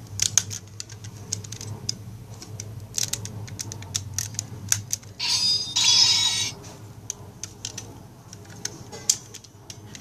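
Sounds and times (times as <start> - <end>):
plastic toy clicks: 0.2 - 5.2
toy electronic sound effect: 5.2 - 6.6.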